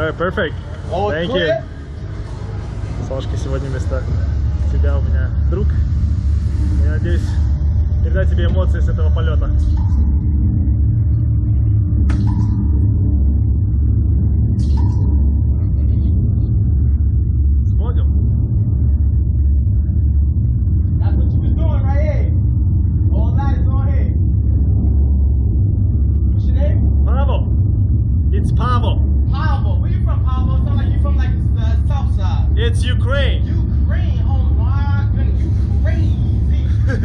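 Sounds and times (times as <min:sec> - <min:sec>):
ride machinery low rumble: 0:00.0 - 0:37.0.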